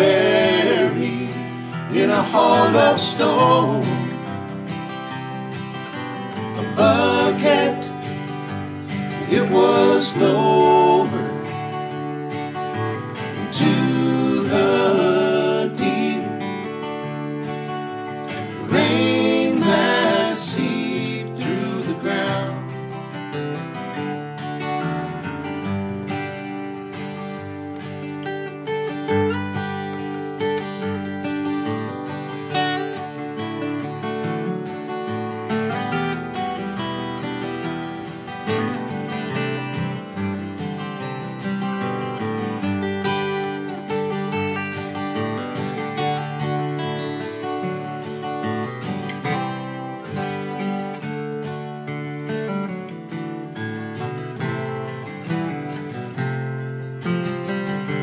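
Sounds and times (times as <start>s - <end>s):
acoustic guitars playing: 0.0s - 58.0s.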